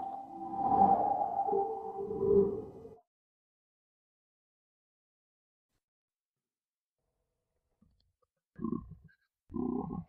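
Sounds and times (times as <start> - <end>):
lower tone: 0.0 - 3.0.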